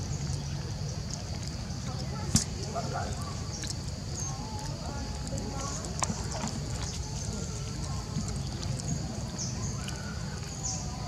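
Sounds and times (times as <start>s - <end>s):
faint distant voices: 0.0s - 11.0s
steady high-pitched hiss: 0.0s - 11.0s.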